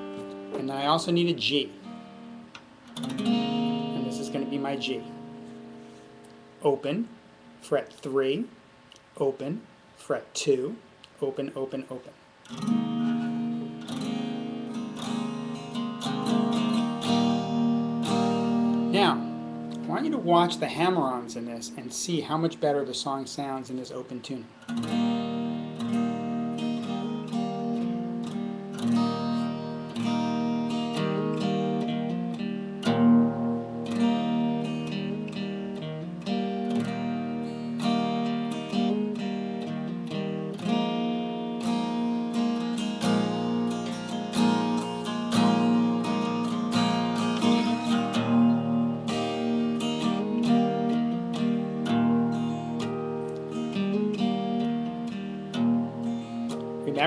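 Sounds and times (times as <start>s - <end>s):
acoustic guitar strumming: 0.0s - 9.5s, 11.5s - 57.0s.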